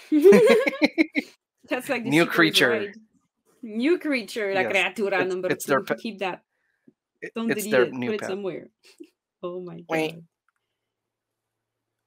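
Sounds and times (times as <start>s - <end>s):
person speaking: 0.0s - 3.0s, 4.3s - 6.4s, 7.2s - 8.6s.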